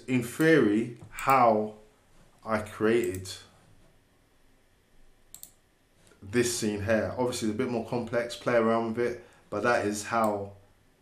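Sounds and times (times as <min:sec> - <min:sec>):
computer mouse double click: 0:05.3 - 0:05.6.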